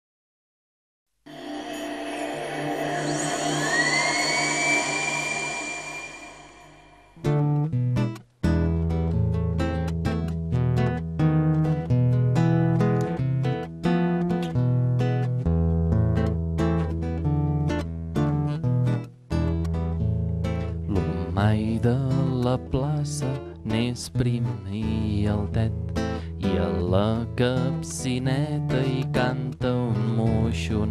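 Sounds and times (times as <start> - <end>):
ambient music: 1.3 - 7.4
acoustic guitar strumming: 1.3 - 30.9.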